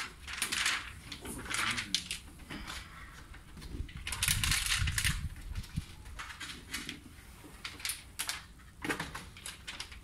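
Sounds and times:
plastic film rustling on glass: 0.0s - 10.0s.

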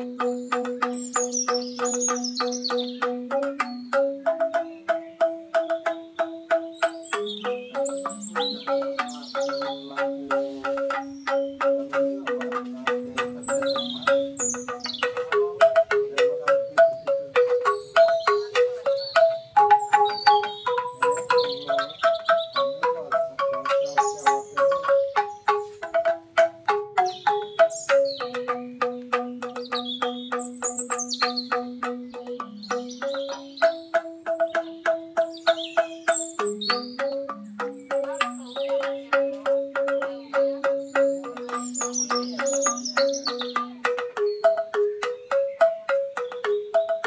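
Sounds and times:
bamboo instruments playing tremolo melody: 0.0s - 47.0s
bird chirps: 0.0s - 47.0s.

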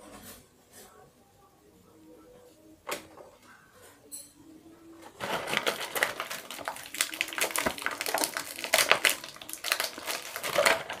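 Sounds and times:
plastic toys and packaging rummaged: 4.8s - 11.0s.

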